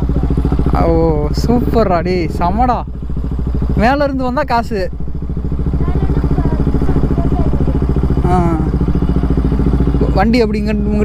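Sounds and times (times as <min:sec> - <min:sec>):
people talking: 0:00.0 - 0:02.9, 0:03.8 - 0:04.9, 0:05.7 - 0:08.8, 0:09.9 - 0:11.0
motorcycle engine running: 0:00.0 - 0:11.0.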